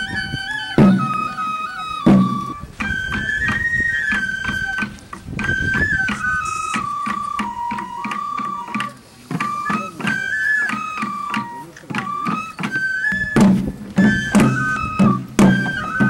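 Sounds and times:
bamboo flute melody: 0.0s - 16.0s
small drums beating: 0.0s - 16.0s.

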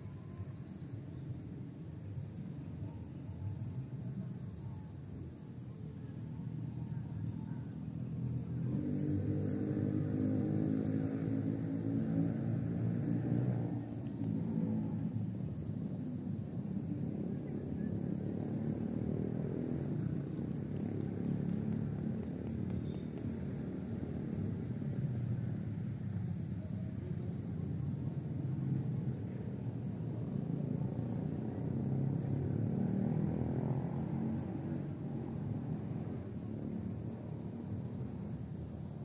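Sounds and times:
low outdoor rumble: 0.0s - 32.6s
faint high-pitched ticks: 20.5s - 23.3s.

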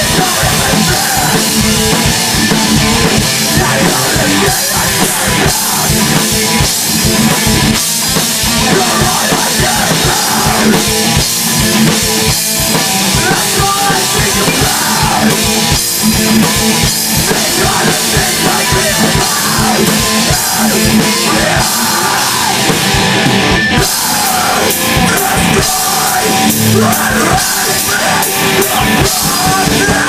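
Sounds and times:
rapid bass drum strokes: 0.0s - 30.0s
rock band playing: 0.0s - 30.0s.

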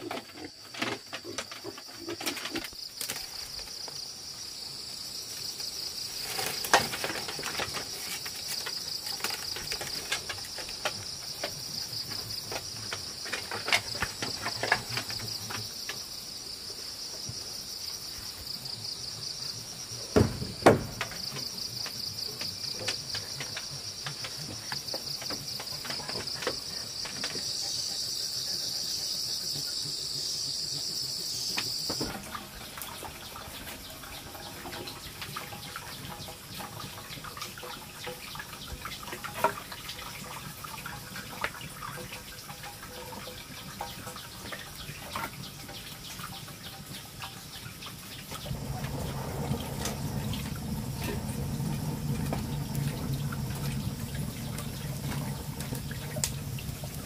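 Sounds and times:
insects chirring: 0.0s - 57.0s
loud thump: 20.2s - 21.1s.

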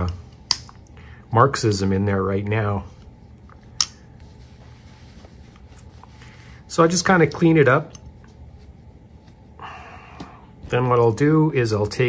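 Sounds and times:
cloth rubbing on knife: 4.2s - 9.6s.

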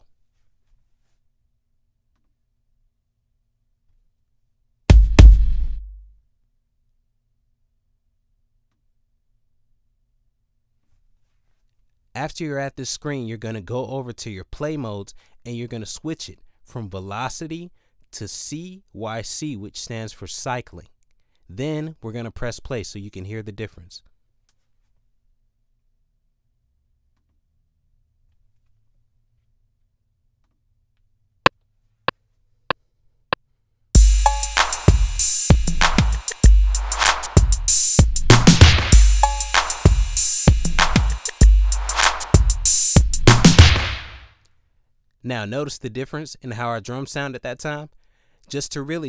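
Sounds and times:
drum pattern: 4.9s - 6.1s, 34.0s - 44.2s.

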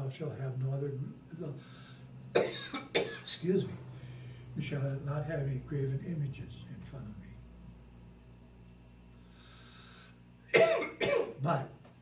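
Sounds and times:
faint breath: 1.6s - 2.2s, 3.9s - 4.6s, 9.2s - 10.2s
man coughing: 2.4s - 3.6s, 10.5s - 11.5s.

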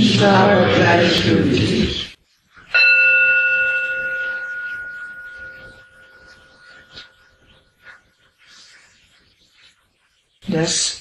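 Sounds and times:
meditation bell ringing: 2.7s - 7.9s.

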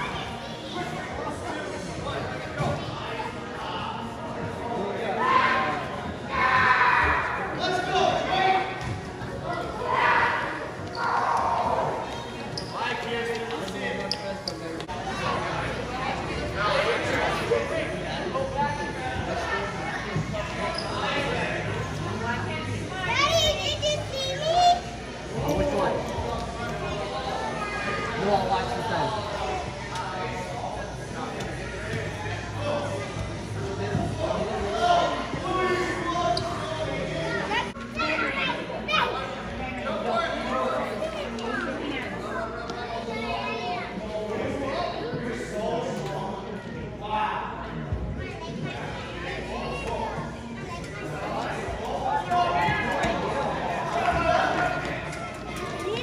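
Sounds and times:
voices talking in echoing hall: 0.0s - 56.0s.

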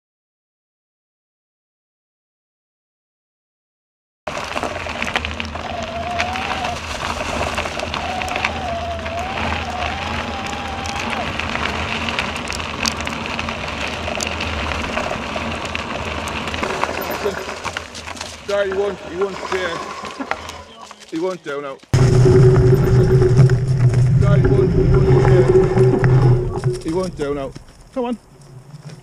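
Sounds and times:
bike tyres rolling over gravel: 4.3s - 29.0s
faint wavering high tone: 22.0s - 27.2s
wind rushing over microphone: 22.0s - 28.0s.

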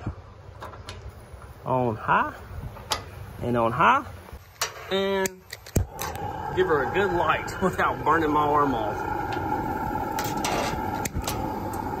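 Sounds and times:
gas hiss: 5.7s - 12.0s.

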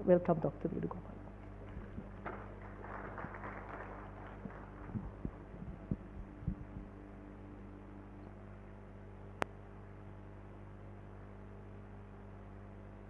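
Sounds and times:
electrical hum: 0.0s - 13.0s
soft low thumps: 4.8s - 7.0s.

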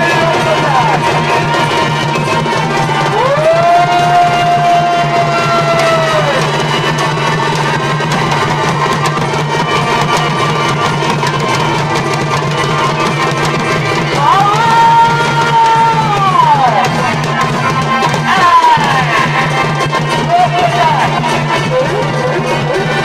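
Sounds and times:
drums beating steadily: 0.0s - 23.0s
reed pipe melody: 0.0s - 23.0s.

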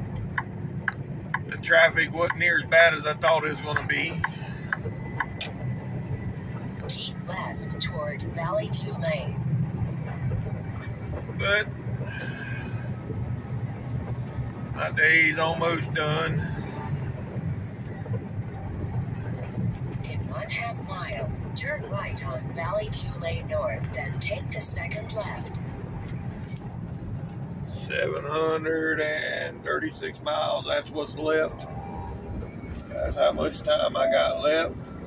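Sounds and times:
truck engine and road noise: 0.0s - 35.0s.

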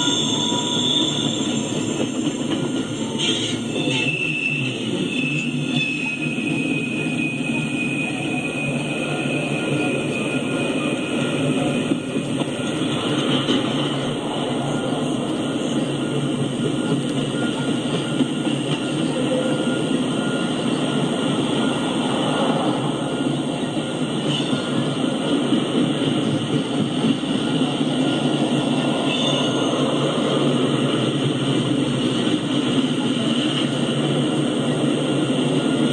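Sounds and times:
freight train wheels on track: 0.0s - 35.9s.

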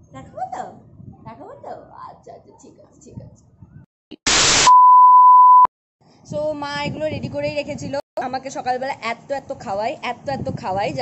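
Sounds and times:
static hiss burst: 4.2s - 4.8s
steady high beep: 4.3s - 5.7s.

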